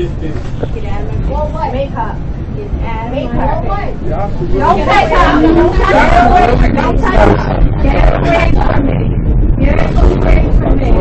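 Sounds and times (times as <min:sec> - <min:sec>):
subway car rumble: 0:00.0 - 0:11.0
people arguing loudly: 0:03.1 - 0:08.8.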